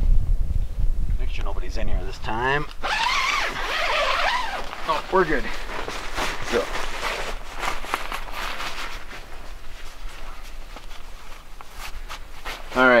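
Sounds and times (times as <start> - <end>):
nylon tent flap rustling: 2.8 - 13.0
shuffling footsteps: 3.8 - 13.0.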